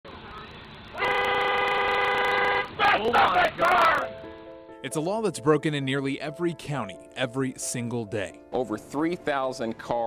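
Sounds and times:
faint road noise: 0:00.0 - 0:10.0
vehicle horn long blast: 0:01.0 - 0:03.0.

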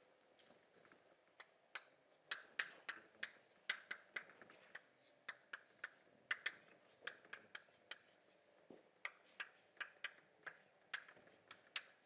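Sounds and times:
chalk tapping on blackboard: 0:01.4 - 0:12.0.

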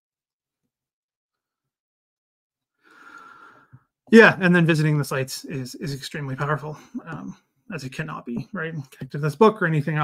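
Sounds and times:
man breathing through mouth: 0:02.8 - 0:03.8
man speaking: 0:04.1 - 0:10.0.

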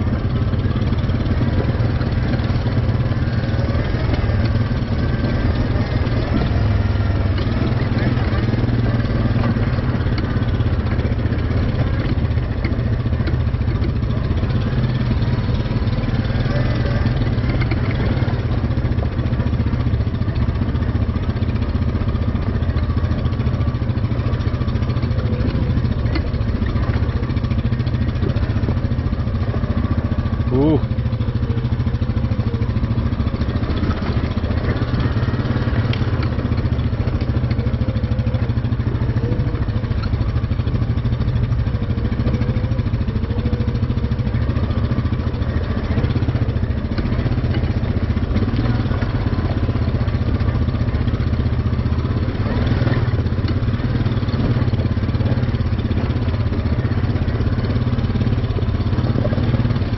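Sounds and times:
quad bike engine running: 0:00.0 - 0:59.9.

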